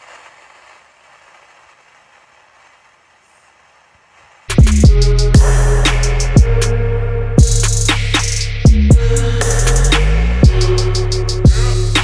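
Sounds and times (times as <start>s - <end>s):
faint recording hiss: 0.0s - 8.7s.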